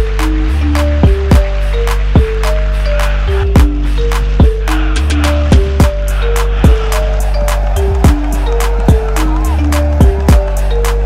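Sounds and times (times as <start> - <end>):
deep bass notes: 0.0 - 11.0
ticking hi-hats: 0.0 - 11.0.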